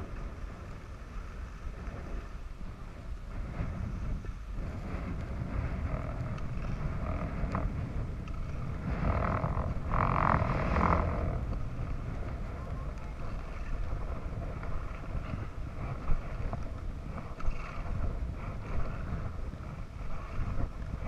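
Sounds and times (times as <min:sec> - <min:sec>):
skis sliding on snow: 0:00.0 - 0:21.0
wind buffeting microphone: 0:00.0 - 0:21.0.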